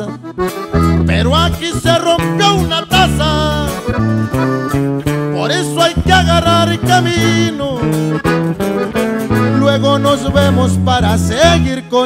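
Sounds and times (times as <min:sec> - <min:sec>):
low bass notes: 0:00.0 - 0:12.0
plucked guitar: 0:00.0 - 0:12.0.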